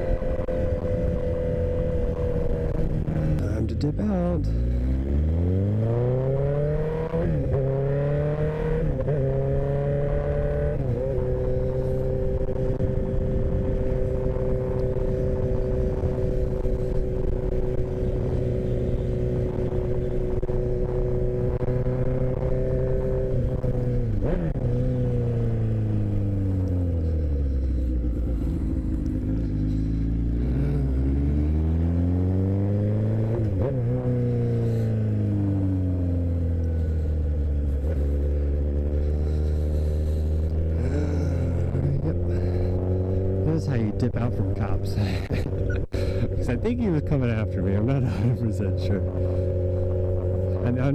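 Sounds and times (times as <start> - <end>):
motorcycle engine accelerating: 0.0 - 50.9.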